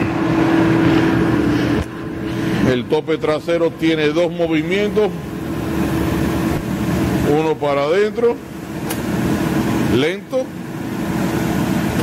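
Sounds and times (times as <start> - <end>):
plate shear motor humming: 0.0 - 12.0.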